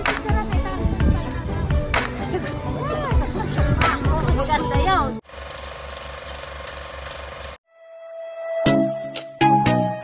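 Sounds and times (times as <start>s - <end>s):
background music: 0.0s - 5.2s, 7.7s - 10.0s
film projector clatter: 5.2s - 7.6s.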